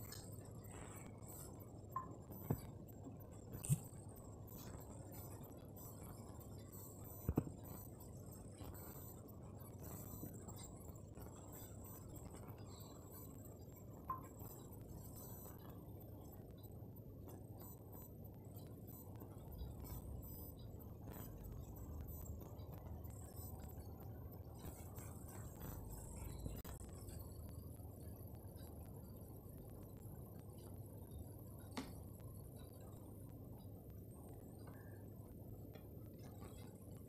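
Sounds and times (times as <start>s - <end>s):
low background hum and hiss: 0.0s - 37.0s.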